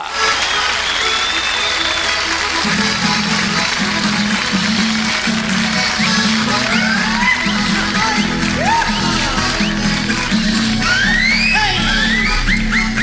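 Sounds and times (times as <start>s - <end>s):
accordion and guitar folk tune: 0.0s - 13.0s
crowd applause: 0.0s - 13.0s.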